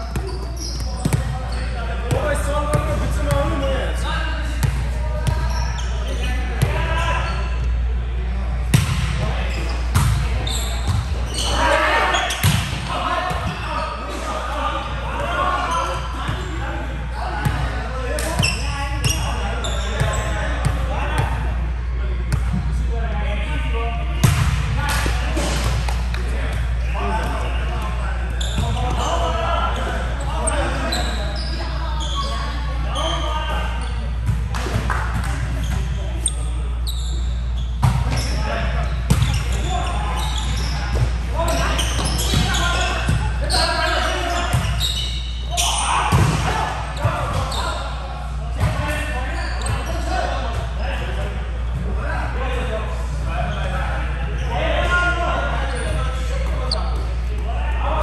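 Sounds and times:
players calling and chatting: 0:00.0 - 0:58.0.

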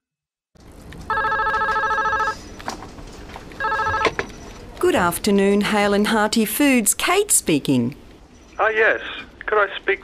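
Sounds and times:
telephone ringing: 0:01.1 - 0:02.4, 0:03.6 - 0:04.4.

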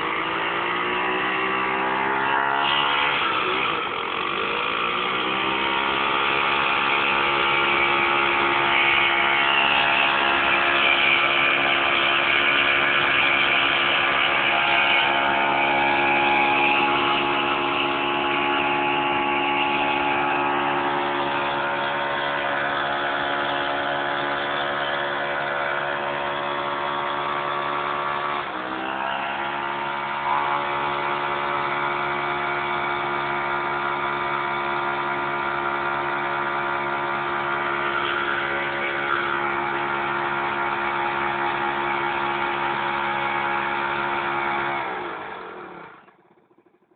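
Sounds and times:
quad engine revving high: 0:00.0 - 0:46.9
wheel spinning on ground: 0:00.0 - 0:46.9.

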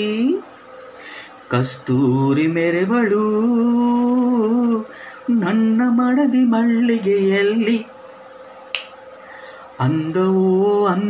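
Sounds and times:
man singing unaccompanied: 0:00.0 - 0:00.5, 0:01.5 - 0:08.0, 0:09.8 - 0:11.0
sharp click: 0:08.7 - 0:09.0.

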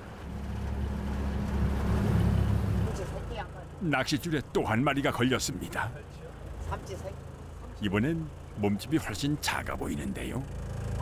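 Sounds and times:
boat engine drone: 0:00.0 - 0:11.0.

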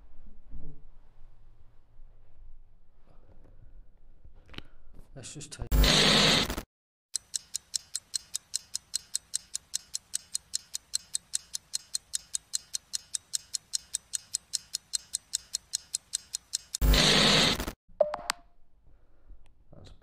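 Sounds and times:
tv static hiss: 0:05.7 - 0:06.6, 0:16.8 - 0:17.7
rapid clock ticking: 0:07.2 - 0:17.8.

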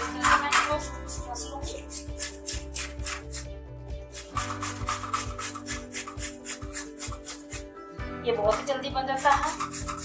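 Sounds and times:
carrots grated on metal grater: 0:04.2 - 0:07.6, 0:08.5 - 0:10.0.

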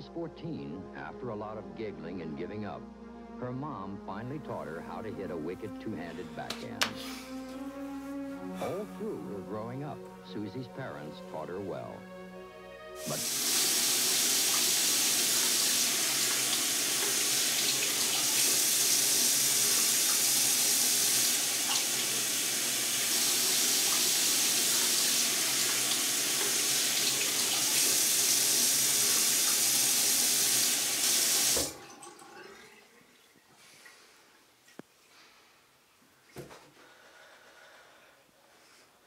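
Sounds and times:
tap running into sink: 0:29.0 - 0:31.8.

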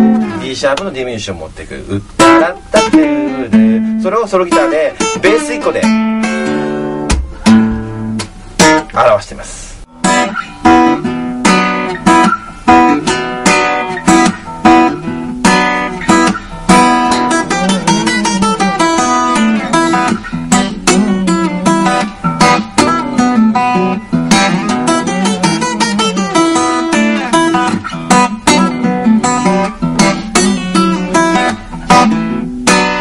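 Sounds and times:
fingerstyle acoustic guitar: 0:00.0 - 0:01.0, 0:02.0 - 0:09.2, 0:09.8 - 0:33.0.

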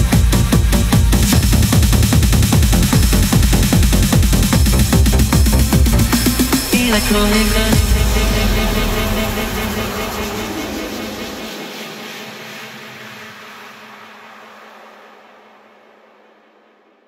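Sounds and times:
electronic music ending: 0:00.0 - 0:15.1
noisy wash with held chord: 0:00.0 - 0:17.0.

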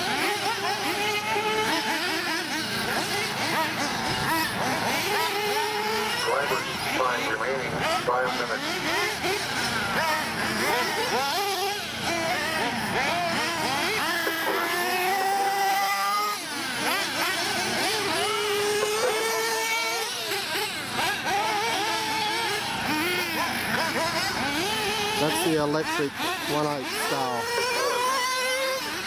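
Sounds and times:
small engines revving: 0:00.0 - 0:29.0.

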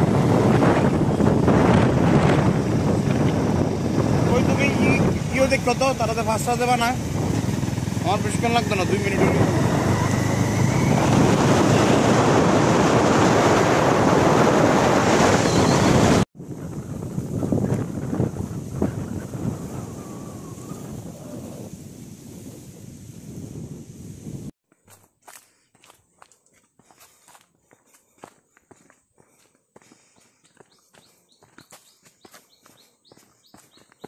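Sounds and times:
wind buffeting microphone: 0:00.0 - 0:24.6.

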